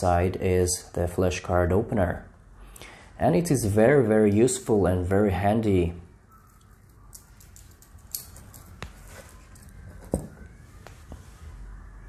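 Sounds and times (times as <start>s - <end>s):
faint handling noise: 6.4s - 11.7s
metal bracelet links clinking: 6.5s - 8.8s.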